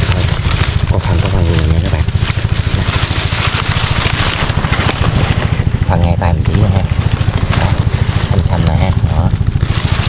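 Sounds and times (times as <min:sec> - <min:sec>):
dry grass and leaves rustling: 0:00.0 - 0:10.0
water pump engine chugging: 0:00.0 - 0:10.0.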